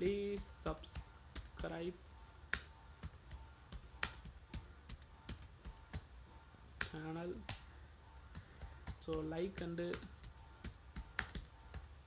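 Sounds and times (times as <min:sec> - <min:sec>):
keyboard keys clicking: 0:02.5 - 0:06.2, 0:08.3 - 0:12.0.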